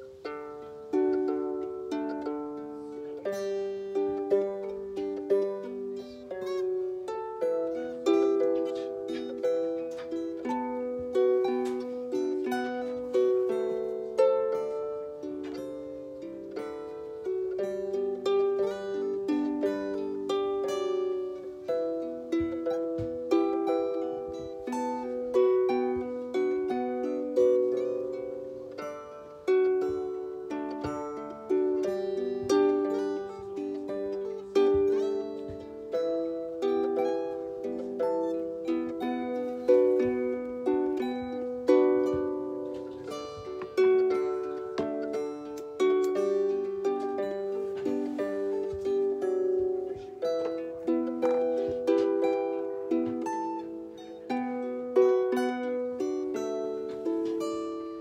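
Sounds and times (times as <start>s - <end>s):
harp: 0.0s - 58.0s.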